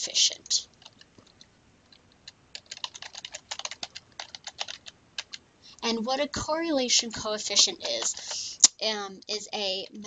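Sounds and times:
computer keyboard typing: 0:00.6 - 0:05.4, 0:07.5 - 0:08.5.

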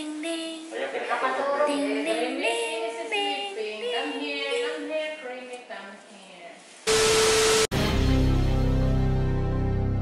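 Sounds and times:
static hiss burst with tone: 0:06.1 - 0:07.8
background music: 0:07.2 - 0:10.0.

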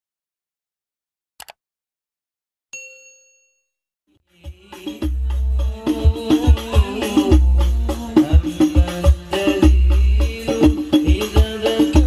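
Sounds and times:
bell-like ding: 0:02.8 - 0:03.8.

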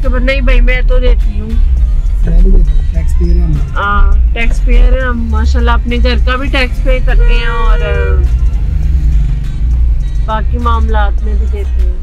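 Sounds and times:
background music: 0:00.0 - 0:12.0
car engine and tyres rumbling: 0:00.0 - 0:12.0.

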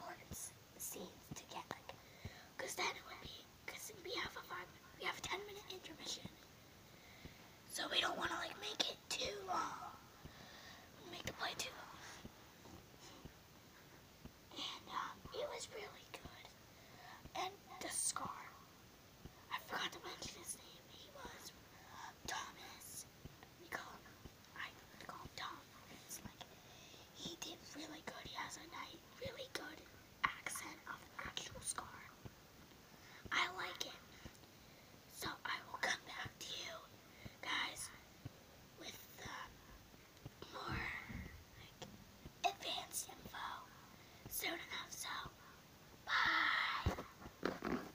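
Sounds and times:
child whispering: 0:00.0 - 0:06.4, 0:07.7 - 0:12.3, 0:14.5 - 0:18.6, 0:19.5 - 0:32.2, 0:33.2 - 0:34.3, 0:35.1 - 0:38.0, 0:38.8 - 0:39.6, 0:40.4 - 0:41.8, 0:42.4 - 0:47.2.

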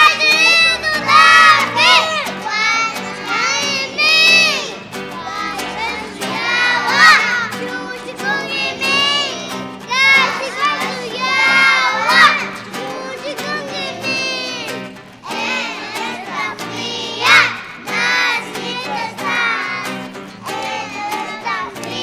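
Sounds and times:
acoustic guitar: 0:00.0 - 0:22.0
young children's choir singing: 0:00.0 - 0:22.0.

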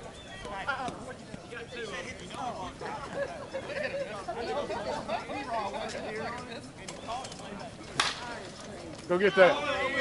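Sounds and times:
faint voices: 0:00.0 - 0:10.0
softball bat hitting ball: 0:08.0 - 0:08.3.

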